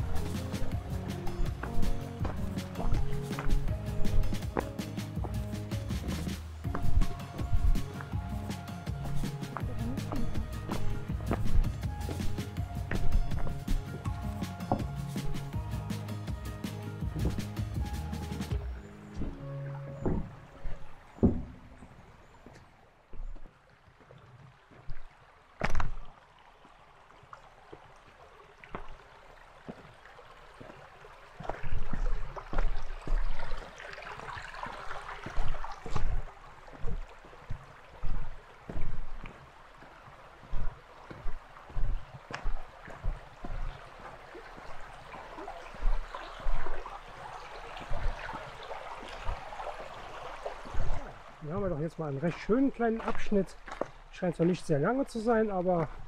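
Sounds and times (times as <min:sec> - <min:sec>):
footsteps on rocky path: 0:00.0 - 0:15.9, 0:16.9 - 0:26.1, 0:29.6 - 0:30.0, 0:30.6 - 0:56.0
brook running over stones: 0:00.0 - 0:56.0.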